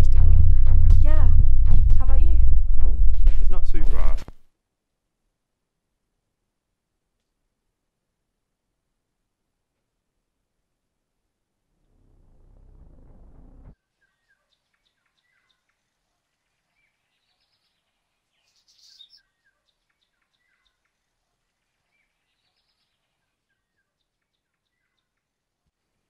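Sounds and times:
low rising swell: 0.0 - 4.2, 11.9 - 13.8
songbird chirps and whistles: 16.5 - 21.0, 21.8 - 25.2.

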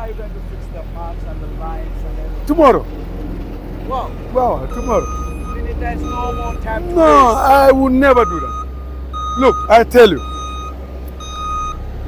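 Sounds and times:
diesel engine drone: 0.0 - 12.0
reversing alarm beeping: 4.0 - 11.8.

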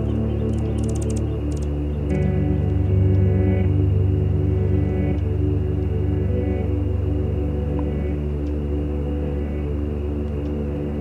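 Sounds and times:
ambient music with low tones: 0.0 - 11.0.

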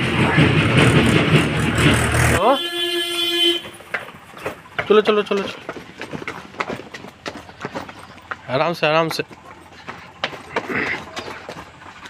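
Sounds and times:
vehicle engine running: 0.0 - 2.6, 3.4 - 12.0
horn toot: 2.4 - 3.8.

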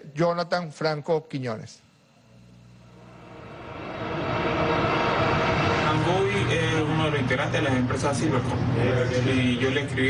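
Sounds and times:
mechanical drone with hiss: 1.0 - 10.0.

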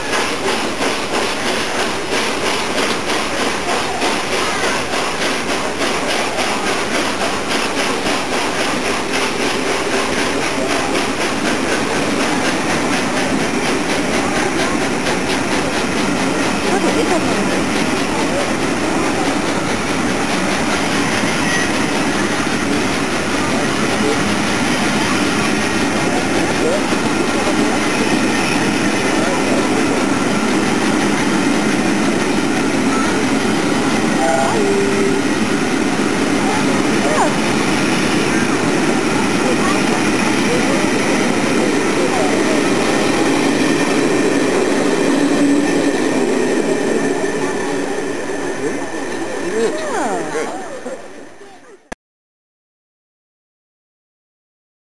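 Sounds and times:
train wheels on rails: 0.0 - 51.9.

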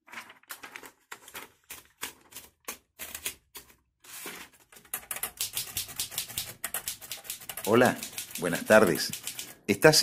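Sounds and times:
typewriter keys clacking: 4.8 - 9.6.

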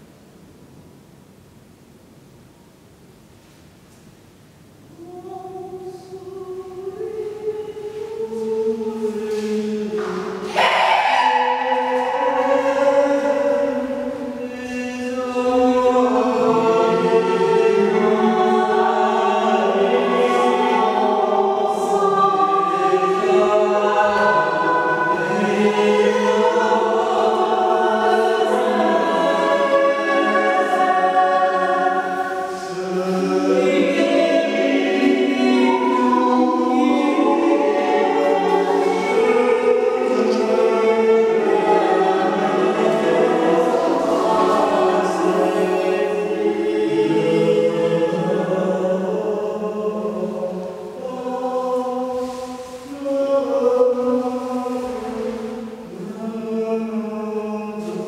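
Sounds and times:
choir singing long notes: 5.0 - 58.0.

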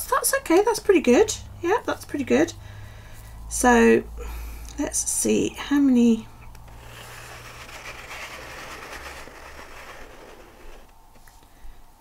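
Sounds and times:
pen drawing on paper: 6.7 - 10.9.

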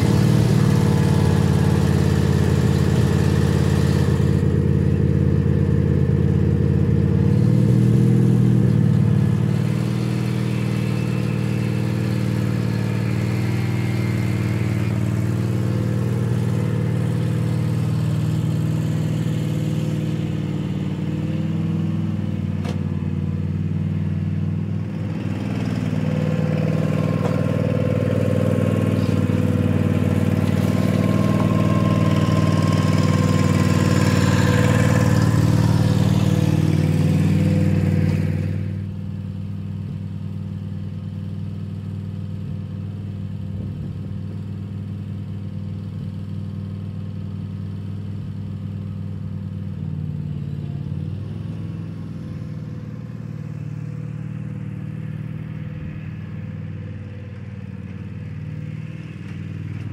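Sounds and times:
riding lawn mower engine running: 0.0 - 59.9.

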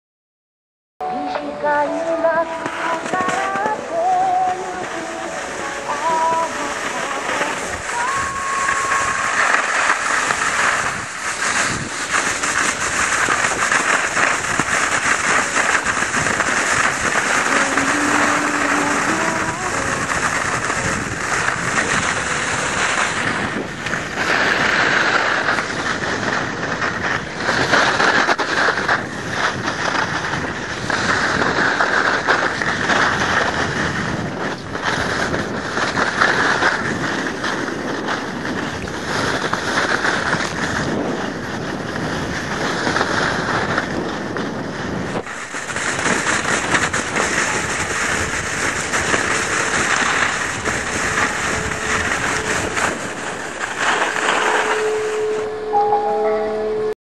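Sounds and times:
snowboard scraping over snow: 1.4 - 57.0
wind buffeting microphone: 1.8 - 57.0.

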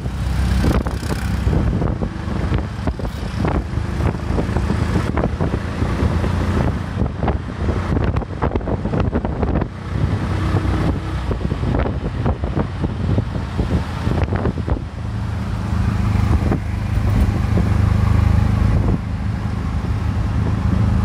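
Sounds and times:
small engine droning: 0.0 - 21.0
wind buffeting microphone: 0.0 - 21.0.

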